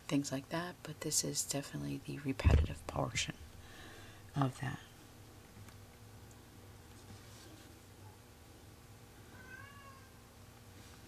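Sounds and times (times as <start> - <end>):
steady low room hum: 0.0 - 11.0.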